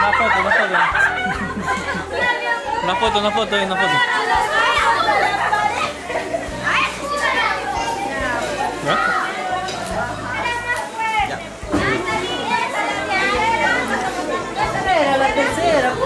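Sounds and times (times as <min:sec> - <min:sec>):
children chattering and calling: 0:00.0 - 0:16.0
music playing: 0:00.0 - 0:16.0.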